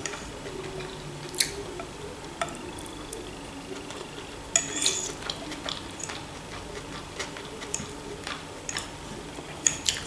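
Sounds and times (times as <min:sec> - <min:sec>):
fork scraping ceramic plate: 0:04.6 - 0:07.9.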